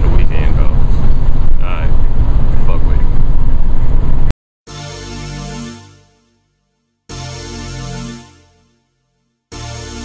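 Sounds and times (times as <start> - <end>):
car cabin road and wind noise: 0.0 - 4.3.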